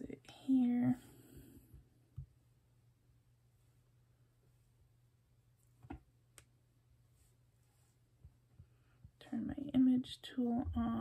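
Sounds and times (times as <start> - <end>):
woman speaking softly: 0.0 - 1.1, 9.2 - 11.0
faint low hum: 0.0 - 11.0.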